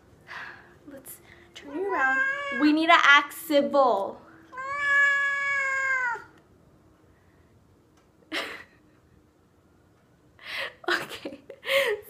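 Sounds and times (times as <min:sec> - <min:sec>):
cat meowing: 0:01.7 - 0:02.8, 0:04.4 - 0:06.4.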